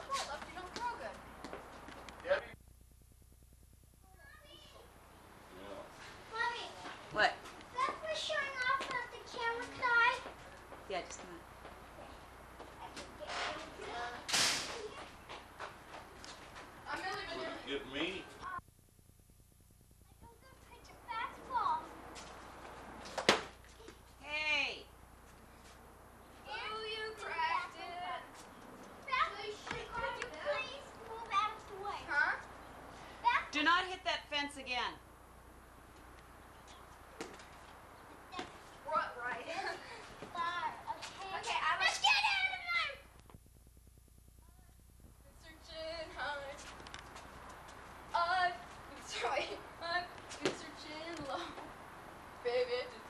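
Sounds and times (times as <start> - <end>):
children calling and chattering: 0.0 - 1.3, 6.2 - 18.6, 20.1 - 22.2, 26.2 - 33.6, 37.8 - 43.2, 45.3 - 53.0
young children calling out: 40.4 - 43.1.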